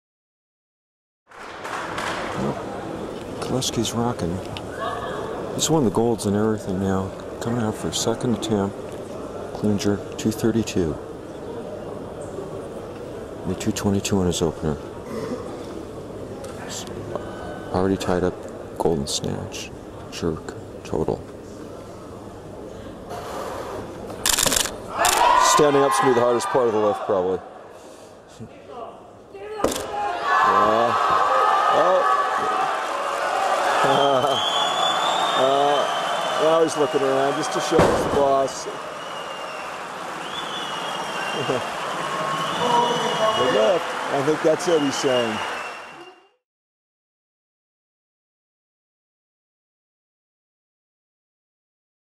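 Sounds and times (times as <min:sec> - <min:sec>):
competition hall background noise: 0:01.3 - 0:46.4.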